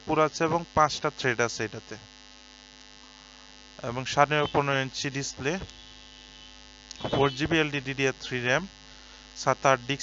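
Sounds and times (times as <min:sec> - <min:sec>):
man speaking: 0:00.0 - 0:02.0, 0:03.8 - 0:05.8, 0:07.0 - 0:08.7, 0:09.4 - 0:10.0
electrical hum: 0:00.0 - 0:10.0.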